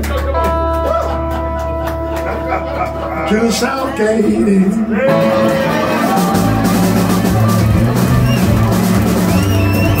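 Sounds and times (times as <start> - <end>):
drum kit: 0.0 - 10.0
electric bass: 0.0 - 10.0
electric guitar: 0.0 - 10.0.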